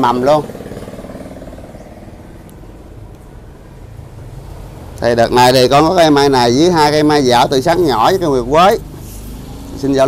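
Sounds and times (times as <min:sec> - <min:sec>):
engine running with low hum: 0:00.0 - 0:10.0.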